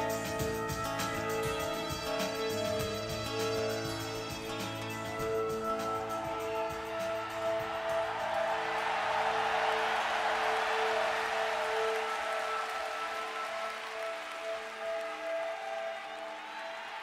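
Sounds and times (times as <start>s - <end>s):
bass guitar: 0.0s - 7.7s.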